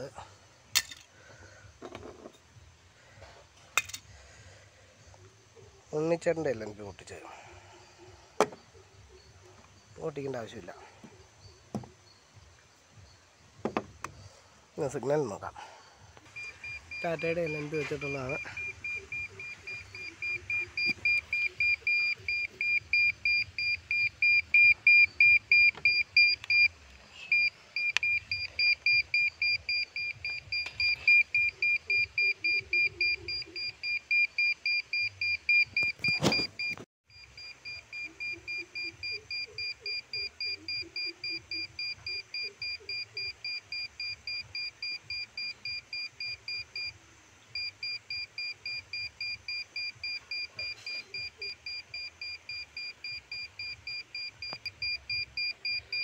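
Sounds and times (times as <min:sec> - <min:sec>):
satellite meter beeping rapidly: 0:16.2 - 0:26.7, 0:27.3 - 0:56.0.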